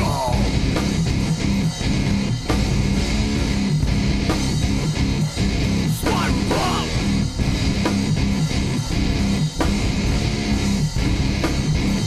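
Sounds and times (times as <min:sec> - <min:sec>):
bass guitar: 0:00.0 - 0:12.0
distorted electric guitars: 0:00.0 - 0:12.0
drum kit: 0:00.0 - 0:12.0.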